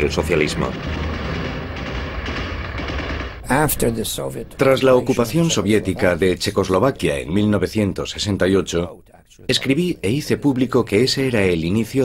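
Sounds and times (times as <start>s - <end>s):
steady low rumble: 0.0s - 6.0s.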